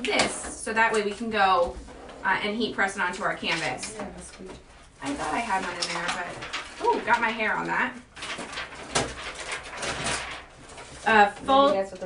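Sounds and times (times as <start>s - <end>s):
plastic film crinkling: 3.2s - 12.0s.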